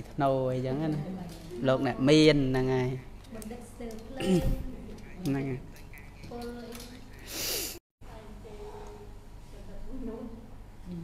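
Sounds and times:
person snorting: 7.2 - 7.8.

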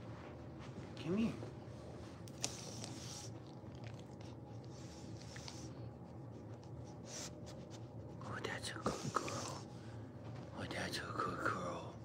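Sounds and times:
person whispering: 8.2 - 9.7.

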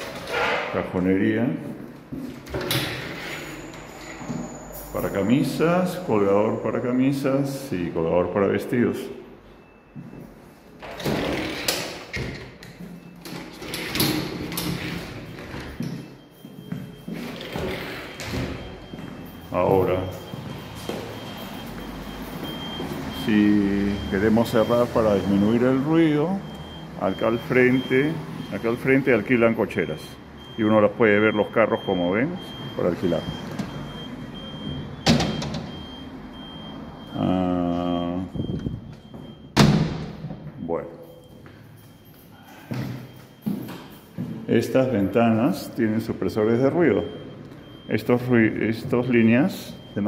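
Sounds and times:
street traffic noise: 0.0 - 11.0, 11.6 - 50.0.

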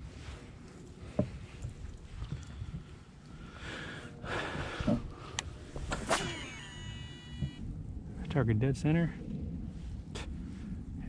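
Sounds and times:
reel spool whining: 5.9 - 7.6.

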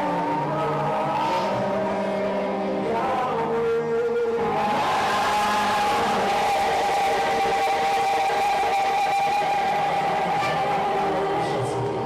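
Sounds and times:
gospel worship music: 0.0 - 12.0.

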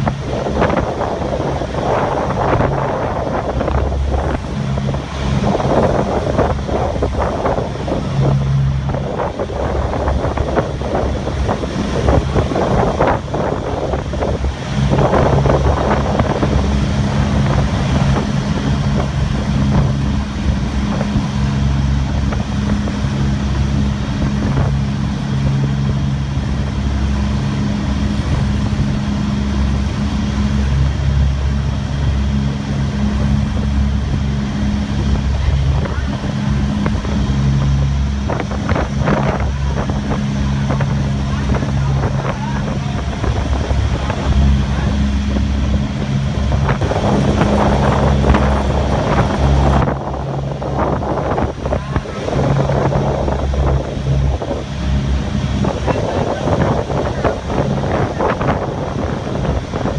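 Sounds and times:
ferry engines droning: 0.0 - 59.9
wake and wind rushing: 0.0 - 59.9.

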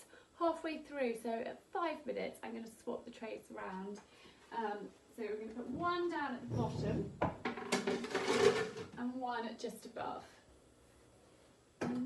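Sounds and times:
metal baking trays clanking: 7.6 - 8.9.

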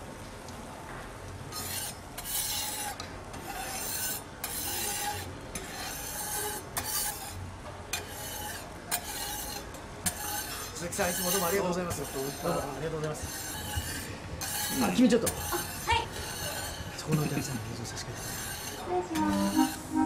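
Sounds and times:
batter stirred in bowl scraping: 1.6 - 7.4, 8.0 - 18.9.

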